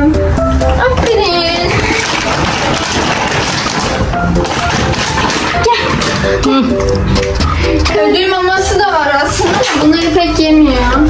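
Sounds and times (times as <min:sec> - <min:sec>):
children's song music: 0:00.0 - 0:11.0.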